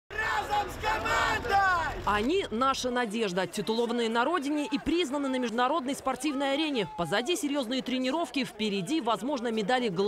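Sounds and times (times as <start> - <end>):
group shouting a cheer: 0.1 - 2.1.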